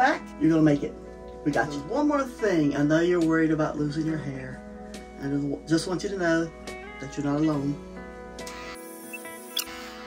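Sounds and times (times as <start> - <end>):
soft background music: 0.0 - 10.0
brief high squeak: 9.1 - 9.8.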